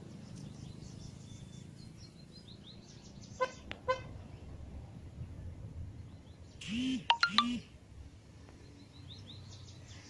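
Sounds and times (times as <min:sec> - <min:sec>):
low city hum: 0:00.0 - 0:10.0.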